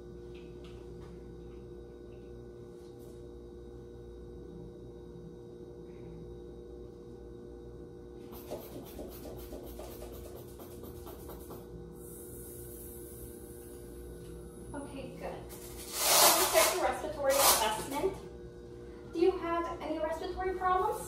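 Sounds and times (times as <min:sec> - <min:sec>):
steady electrical hum: 0:00.0 - 0:21.0
air hissing from release valve: 0:12.0 - 0:13.4.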